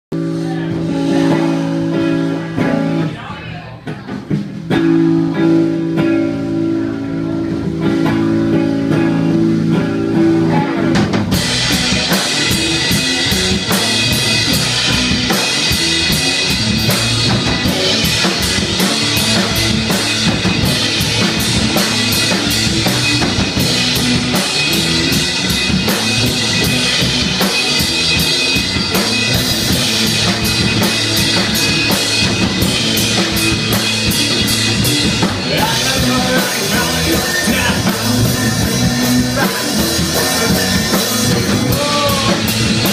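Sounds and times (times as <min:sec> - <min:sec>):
drums and cymbals: 0:00.1 - 0:42.9
rock band playing: 0:00.1 - 0:42.9.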